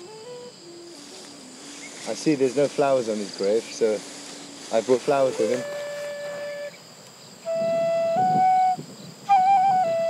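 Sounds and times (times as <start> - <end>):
flute long held notes: 0.0 - 1.7, 5.1 - 6.8, 7.4 - 10.0.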